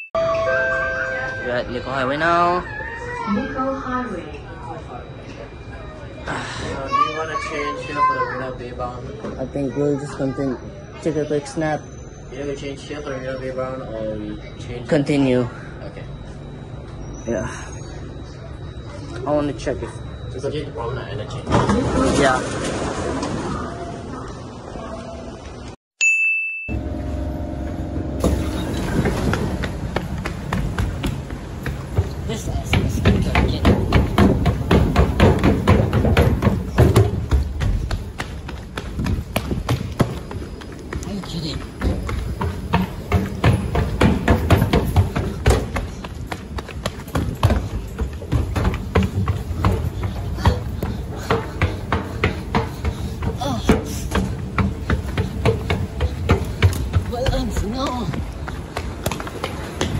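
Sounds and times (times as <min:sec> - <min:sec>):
running footsteps on hard floor: 0:28.2 - 0:59.9.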